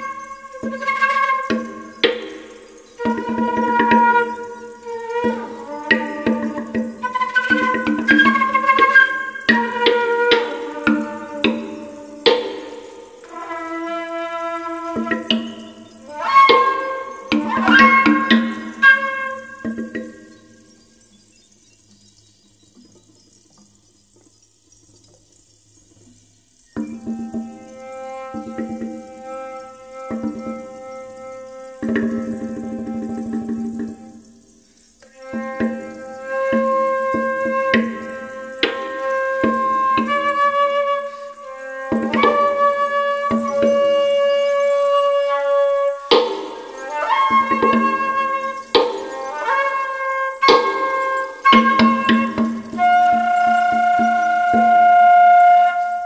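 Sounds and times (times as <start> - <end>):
percussion hits: 0.0 - 20.7, 41.4 - 55.1
flute notes: 0.0 - 20.8, 26.8 - 34.4, 35.0 - 56.0.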